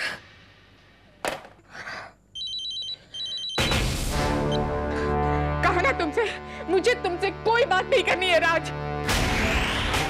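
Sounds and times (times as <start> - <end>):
telephone ringing: 2.4 - 3.8.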